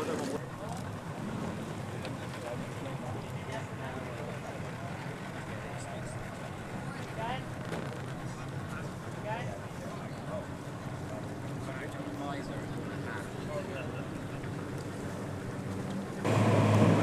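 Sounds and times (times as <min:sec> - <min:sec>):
water rushing: 0:16.2 - 0:17.0.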